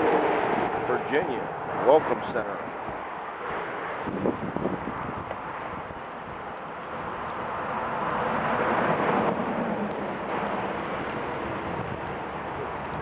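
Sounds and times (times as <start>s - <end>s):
traffic: 0.0s - 13.0s
wind on microphone: 0.0s - 13.0s.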